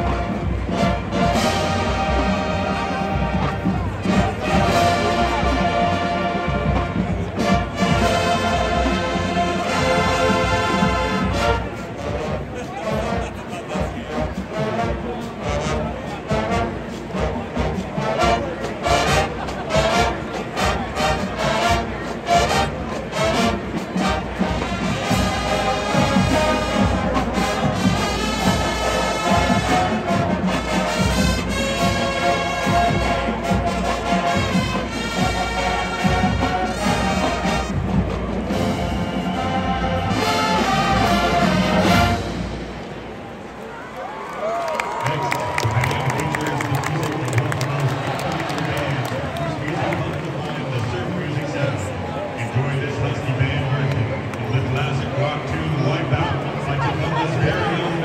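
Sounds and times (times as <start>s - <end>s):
marching band playing: 0.0s - 44.2s.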